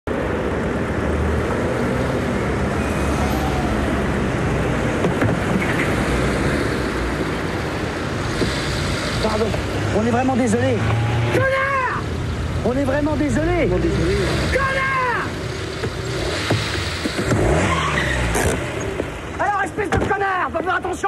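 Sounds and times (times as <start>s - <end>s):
road noise: 0.0s - 21.0s
car engines humming: 0.1s - 19.8s.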